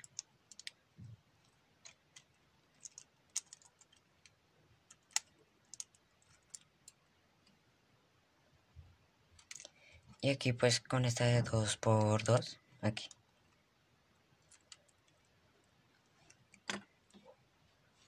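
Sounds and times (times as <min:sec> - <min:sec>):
plastic toy bricks clicking: 0:01.8 - 0:07.0.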